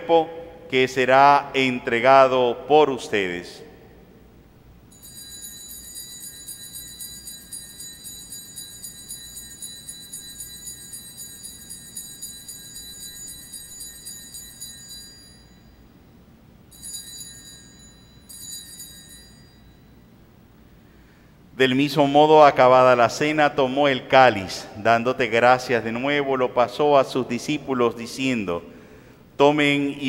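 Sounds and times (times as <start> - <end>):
altar bells ringing: 4.9 - 16.0, 16.7 - 20.2.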